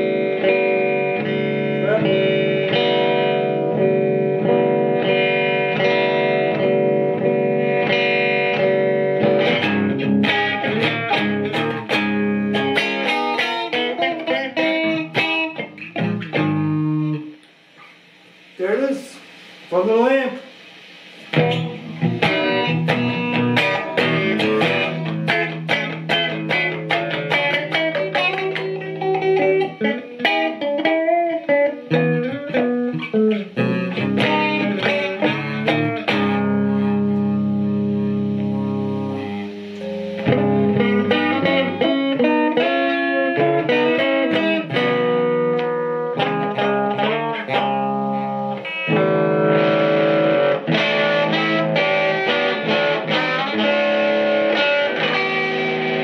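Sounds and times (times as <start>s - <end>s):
electric guitar through amp: 0.0s - 56.0s.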